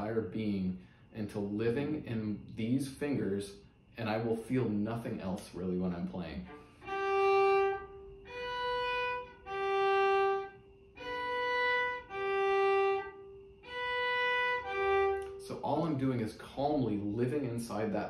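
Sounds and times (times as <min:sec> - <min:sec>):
cello bowed slowly: 0:06.1 - 0:16.2.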